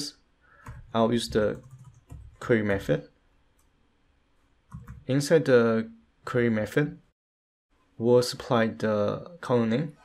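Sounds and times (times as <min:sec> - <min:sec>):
keyboard keystrokes: 0:00.6 - 0:02.4, 0:04.7 - 0:05.1.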